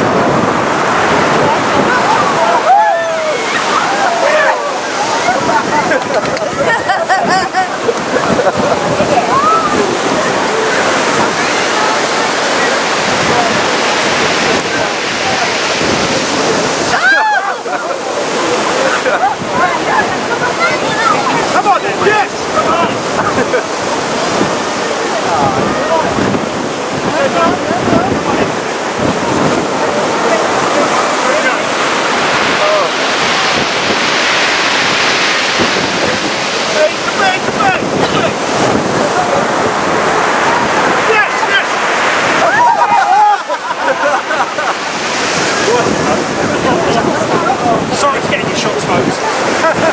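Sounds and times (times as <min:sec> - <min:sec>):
people calling: 0:00.0 - 0:48.0
surf breaking against breakwater: 0:00.0 - 0:49.9
wind buffeting microphone: 0:00.0 - 0:49.9
person shouting: 0:42.4 - 0:43.4.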